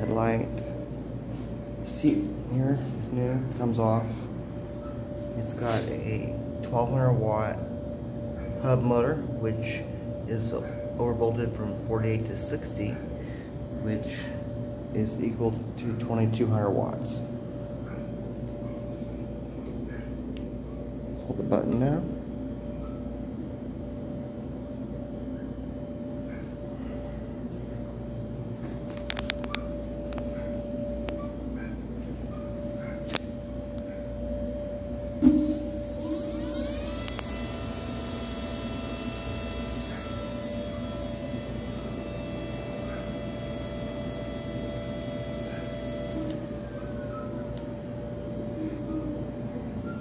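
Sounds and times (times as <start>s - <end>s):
electric motor whine: 35.2s - 46.7s.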